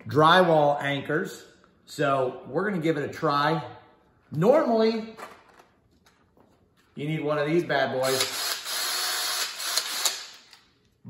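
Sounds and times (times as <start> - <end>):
cordless drill motor whir: 8.2 - 10.2.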